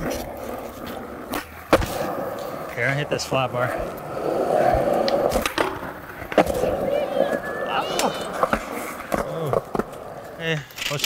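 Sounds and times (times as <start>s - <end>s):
skateboard clacks: 0.0s - 11.0s
skateboard wheels rolling on concrete: 0.0s - 11.0s.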